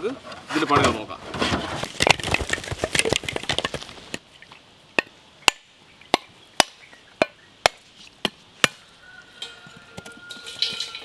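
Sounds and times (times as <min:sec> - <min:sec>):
machete striking coconut: 0:05.0 - 0:08.8.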